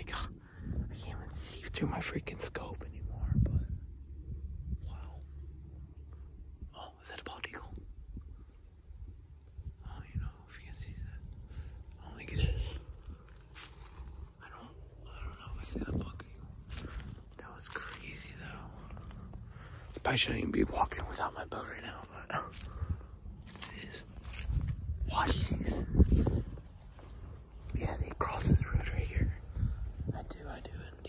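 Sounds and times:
quiet whispering: 0.0s - 31.0s
footsteps crunching on stubble: 11.1s - 31.0s.

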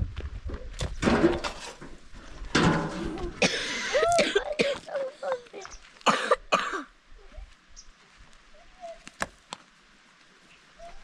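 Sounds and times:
child coughing: 3.3s - 5.4s, 6.0s - 6.9s.

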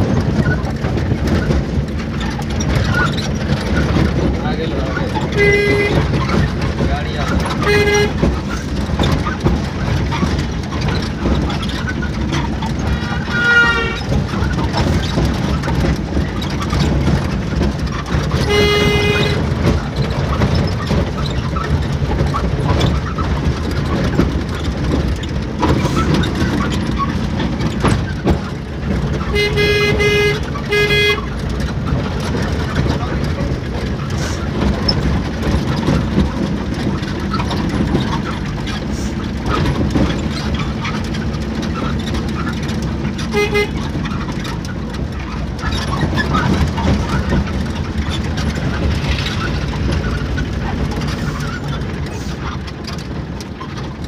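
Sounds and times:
vehicle engine and road rumble: 0.0s - 54.0s
short horn toots: 5.4s - 6.1s, 7.6s - 8.2s, 18.5s - 19.5s, 29.3s - 31.2s, 43.3s - 43.8s.

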